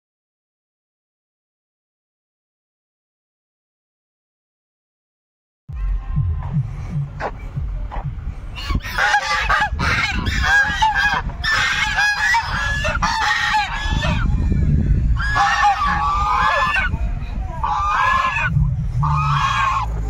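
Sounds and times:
low steady rumble: 0:05.7 - 0:20.0
geese honking: 0:05.8 - 0:20.0.

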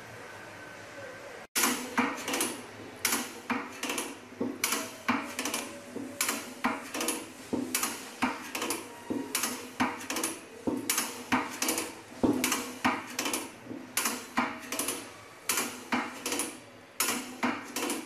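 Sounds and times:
sharp metallic clacks of lever: 0:01.6 - 0:18.0.

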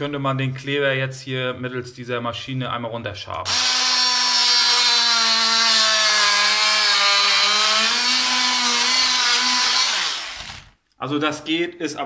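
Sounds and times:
power tool scraping floor: 0:03.5 - 0:10.7.

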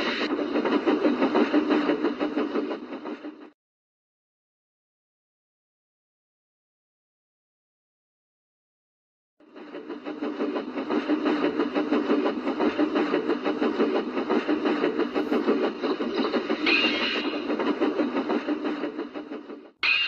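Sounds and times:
train clattering: 0:00.0 - 0:03.5, 0:09.4 - 0:20.0.

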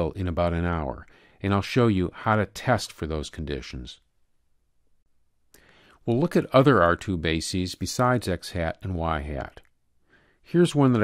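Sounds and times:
faint breath drawn in: 0:01.1 - 0:01.4, 0:05.5 - 0:06.0, 0:10.0 - 0:10.5.

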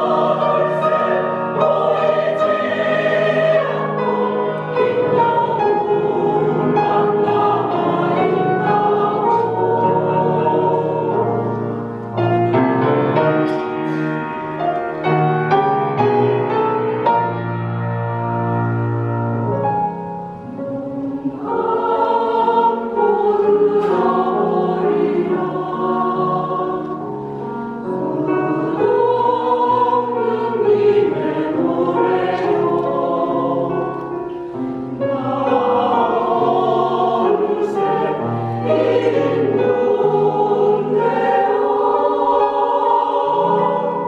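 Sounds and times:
mixed choir singing: 0:00.0 - 0:16.1, 0:20.4 - 0:44.0.

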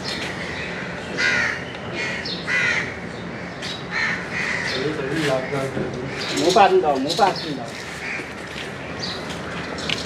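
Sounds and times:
bird harsh calls: 0:00.0 - 0:10.0.

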